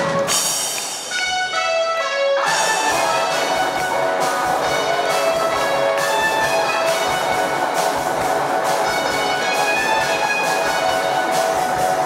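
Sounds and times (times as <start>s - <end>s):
electronic keyboard chords: 1.2s - 12.0s.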